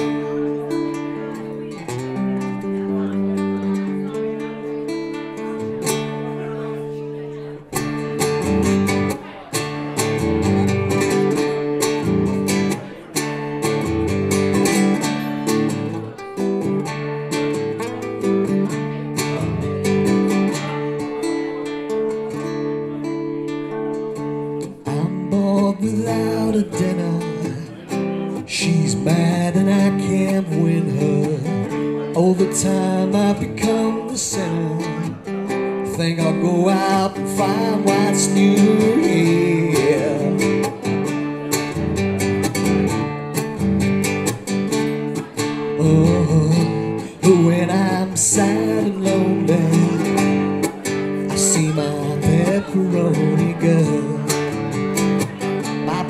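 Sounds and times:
solo blues guitar: 0:00.0 - 0:56.0.

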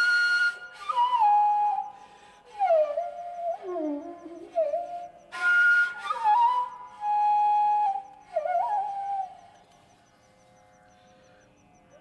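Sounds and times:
bamboo flute melody: 0:00.0 - 0:10.1.

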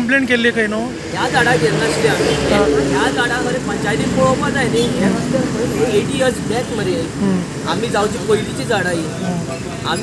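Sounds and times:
man talking loudly: 0:00.0 - 0:10.0
road traffic noise: 0:00.0 - 0:10.0.

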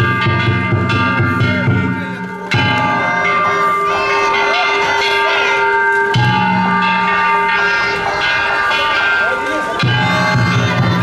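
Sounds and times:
hand-struck metal gongs ringing: 0:00.0 - 0:11.0
crew voices calling out: 0:01.0 - 0:11.0.

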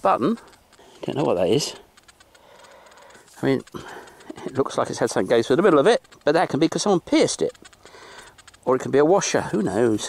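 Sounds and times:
light ticks: 0:00.0 - 0:10.0
man speaking: 0:01.0 - 0:01.9, 0:03.3 - 0:07.6, 0:08.6 - 0:10.0.

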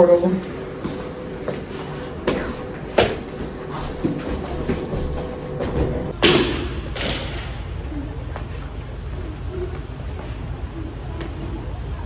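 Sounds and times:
low background noise: 0:00.0 - 0:12.0.

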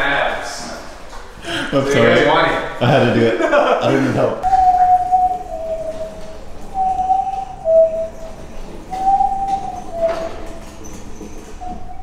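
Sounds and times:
low hooting two-note call: 0:04.4 - 0:10.6.

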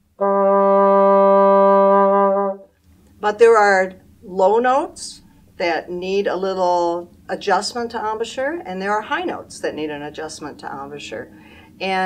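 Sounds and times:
bassoon sustained note: 0:00.2 - 0:02.7.

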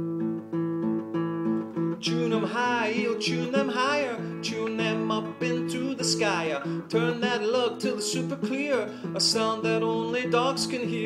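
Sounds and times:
classical guitar strumming: 0:00.0 - 0:11.0.

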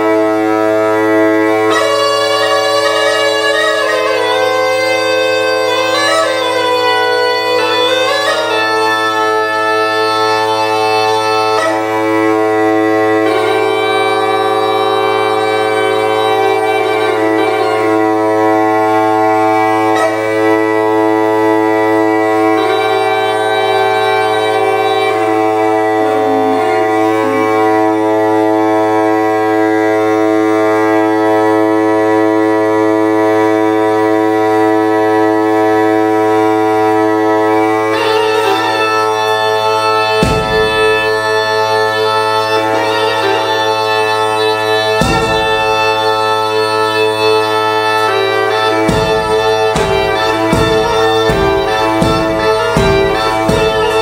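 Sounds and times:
bagpipe melody over drone: 0:00.0 - 0:54.0.

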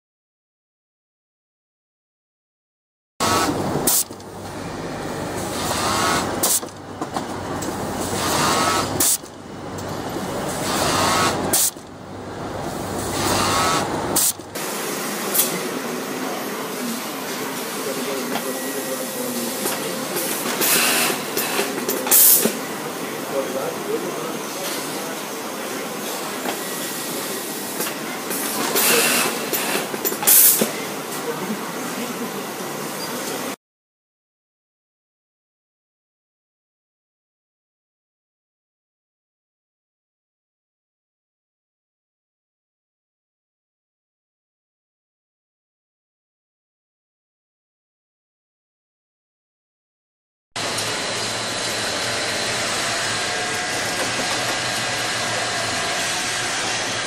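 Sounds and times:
industrial sewing machine running: 0:03.2 - 0:33.6, 0:50.6 - 0:57.0
compressed air hiss: 0:03.8 - 0:04.1, 0:08.1 - 0:09.2, 0:10.6 - 0:11.8, 0:13.0 - 0:16.0, 0:19.0 - 0:22.6
electrical hum: 0:50.6 - 0:57.0.

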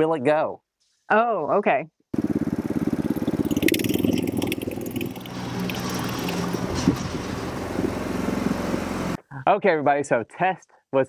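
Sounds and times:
small gasoline engine under load: 0:02.2 - 0:09.2.

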